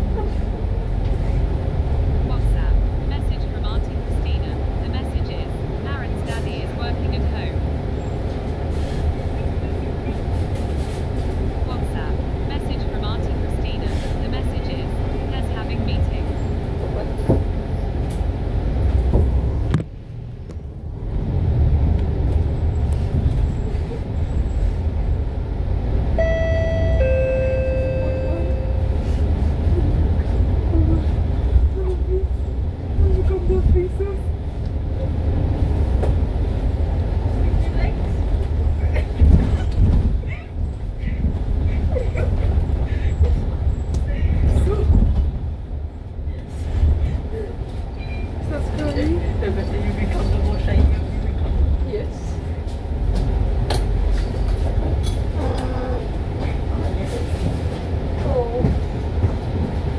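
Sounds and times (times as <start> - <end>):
bus engine and road rumble: 0.0 - 59.9
two-note electronic tone: 26.2 - 29.0.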